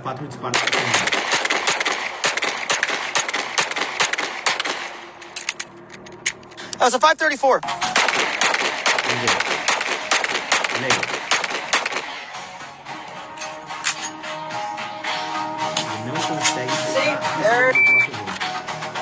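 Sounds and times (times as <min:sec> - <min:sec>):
rapid pistol fire: 0:00.5 - 0:05.2, 0:07.8 - 0:12.2
background music: 0:07.6 - 0:19.0.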